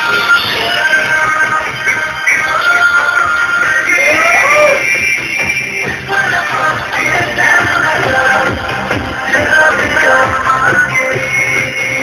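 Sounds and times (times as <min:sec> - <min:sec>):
loud music: 0:00.0 - 0:12.0
person singing: 0:00.0 - 0:12.0.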